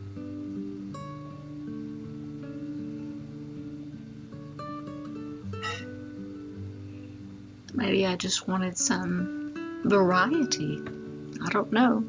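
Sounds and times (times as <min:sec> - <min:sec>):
acoustic guitar plucking: 0:00.0 - 0:12.0.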